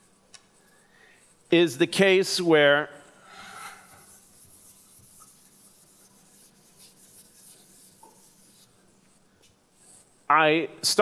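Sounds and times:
low room hum: 0.0s - 11.0s
chalk scratching on blackboard: 3.4s - 10.2s.

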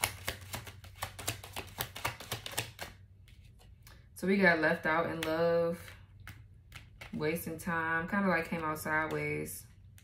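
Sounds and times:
cards being shuffled: 0.0s - 3.9s, 5.1s - 7.2s.

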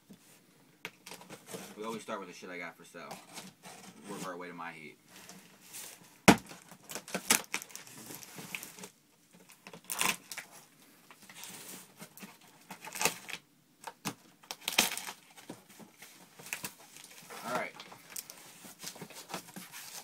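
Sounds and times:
cardboard rustling: 1.0s - 2.0s, 5.1s - 13.4s, 14.0s - 20.0s
packing tape ripping: 6.3s - 8.9s, 9.6s - 10.5s, 12.8s - 13.4s, 14.0s - 15.3s.

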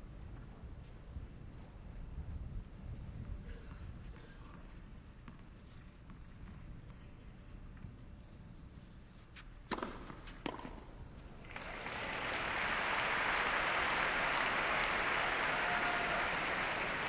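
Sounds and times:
tennis ball hitting racket: 9.7s - 10.8s
crowd applause: 11.5s - 17.0s.

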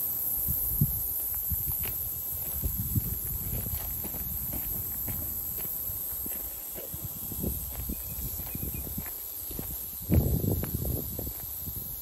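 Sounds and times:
footsteps on stony dirt: 1.2s - 12.0s.

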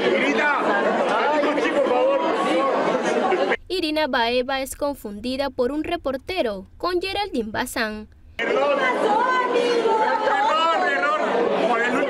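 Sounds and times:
babble of chatter: 0.0s - 3.6s, 8.4s - 12.0s.

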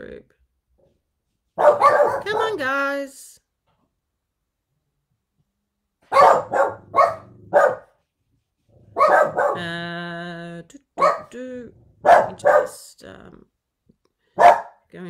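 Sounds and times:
dogs barking: 1.6s - 2.5s, 6.0s - 8.0s, 8.9s - 9.7s, 11.0s - 11.3s, 12.0s - 12.8s, 14.4s - 14.8s
dog held call: 1.6s - 2.6s, 11.0s - 11.4s, 12.0s - 12.8s.

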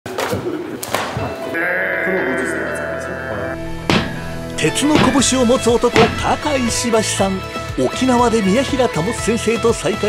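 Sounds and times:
music: 2.3s - 10.0s.

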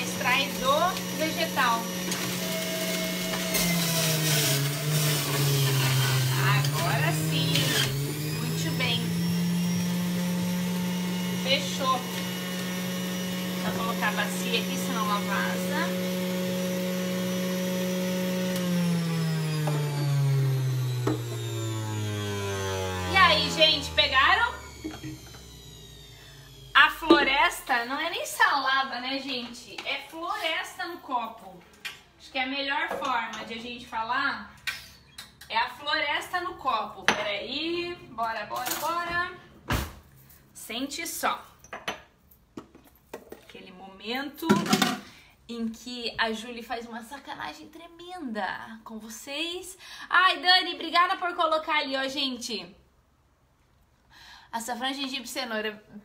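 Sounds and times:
woman speaking: 0.0s - 2.0s, 6.2s - 9.3s, 11.3s - 12.2s, 13.5s - 16.0s, 23.0s - 24.8s, 26.8s - 34.5s, 35.5s - 39.4s, 40.6s - 41.5s, 43.5s - 52.8s, 54.5s - 56.0s
electric juicer motor humming: 0.0s - 27.3s.

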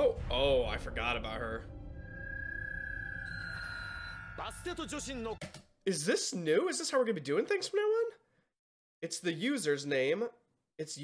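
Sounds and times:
fainter higher electronic tone: 1.7s - 5.3s
high-pitched electronic tone: 1.8s - 5.0s.

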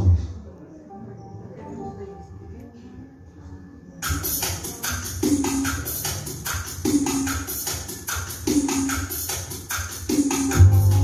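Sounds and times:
percussion beat: 4.0s - 11.0s
live band playing: 10.1s - 11.0s
keyboard bass line: 10.5s - 11.0s.

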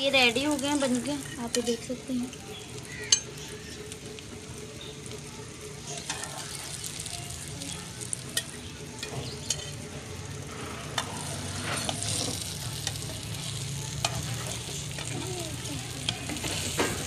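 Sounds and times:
food sizzling in hot oil: 0.0s - 17.0s.

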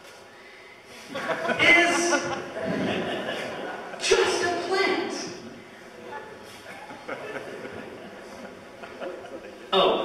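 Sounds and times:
room noise: 0.0s - 10.0s.

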